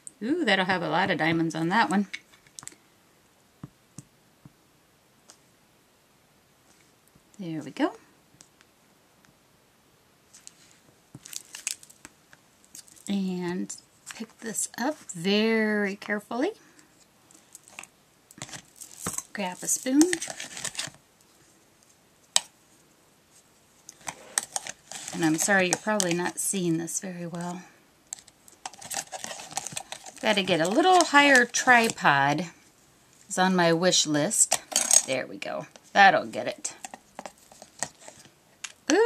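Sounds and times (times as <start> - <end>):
woman speaking: 0.2 - 2.1, 7.4 - 8.1, 13.1 - 16.6, 19.3 - 20.2, 25.1 - 27.7, 30.2 - 32.6, 33.3 - 36.8
paper rustling: 17.7 - 21.0, 24.0 - 26.3, 28.6 - 31.9.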